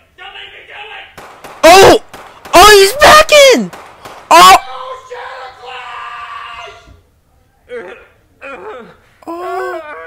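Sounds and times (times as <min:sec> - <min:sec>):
person crying out: 0:01.6 - 0:02.0, 0:04.3 - 0:04.7, 0:07.8 - 0:10.0.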